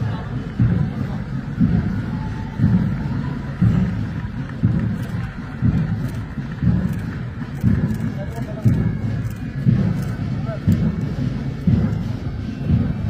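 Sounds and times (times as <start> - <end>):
bass drum thumps: 0.6 - 13.0.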